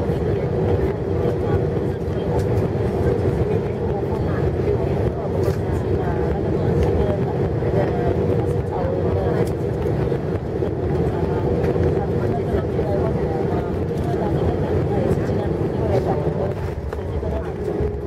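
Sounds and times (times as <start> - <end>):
airliner cabin engine rumble: 0.0 - 18.0
constant hum: 0.0 - 18.0.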